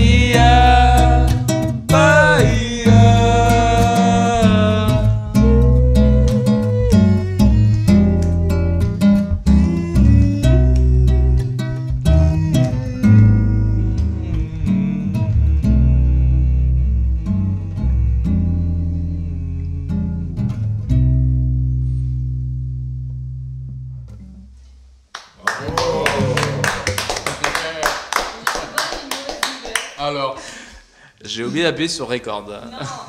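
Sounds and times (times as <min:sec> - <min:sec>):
acoustic guitars and bass playing: 0:00.0 - 0:25.1, 0:25.8 - 0:27.1
audience clapping and cheering: 0:05.6 - 0:07.4, 0:25.1 - 0:30.1.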